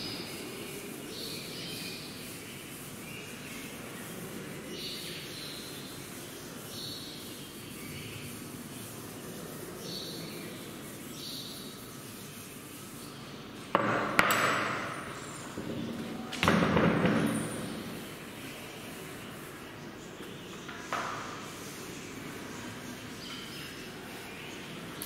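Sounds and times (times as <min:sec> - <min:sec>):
cloth wiping chalkboard: 0:00.0 - 0:13.7, 0:17.1 - 0:24.9
sharp knocks: 0:13.8 - 0:15.0.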